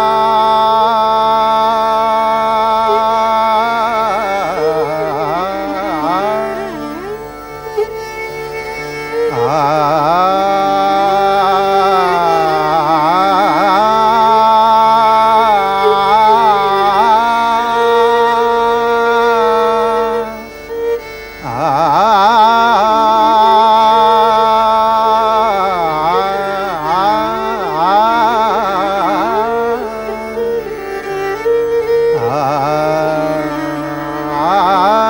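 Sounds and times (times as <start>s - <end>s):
male classical vocal: 0.0s - 7.4s, 9.1s - 35.0s
tanpura drone: 0.0s - 35.0s.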